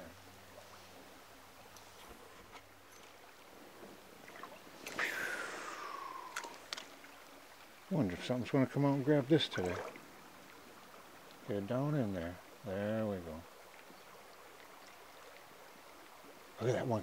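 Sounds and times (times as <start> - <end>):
faint moving water: 0.0 - 17.0
reel clicks: 6.2 - 6.9.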